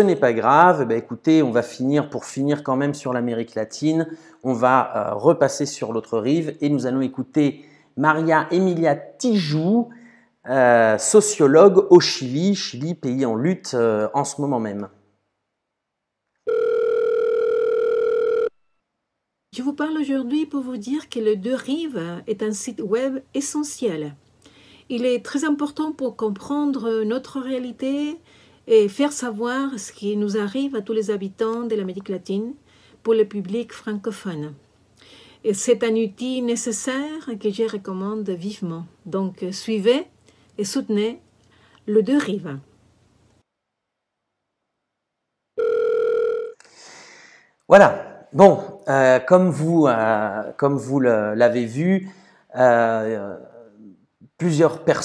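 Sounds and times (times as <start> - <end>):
telephone call tone beep: 16.5 - 18.6, 45.6 - 46.6.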